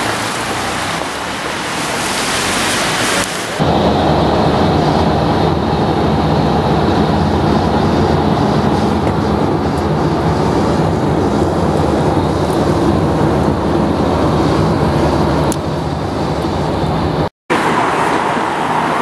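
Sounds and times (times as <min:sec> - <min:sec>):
vehicle driving on wet road: 0:00.0 - 0:19.0.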